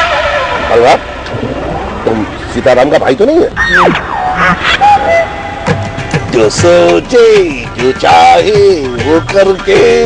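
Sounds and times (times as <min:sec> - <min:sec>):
car interior rumble: 0:00.0 - 0:10.0.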